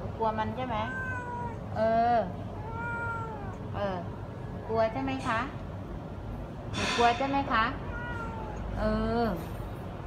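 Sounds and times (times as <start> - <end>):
cat meowing: 0.6 - 1.8, 2.6 - 3.8, 7.8 - 8.8.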